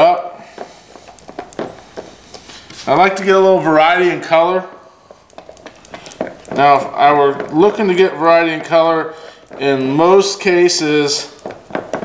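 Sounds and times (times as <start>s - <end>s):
stir stick scraping plastic cup: 0.5s - 12.0s.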